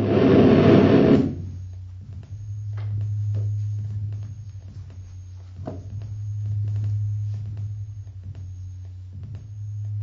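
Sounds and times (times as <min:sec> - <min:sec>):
low hum: 0:00.0 - 0:10.0
noisy electronic music burst: 0:00.0 - 0:10.0.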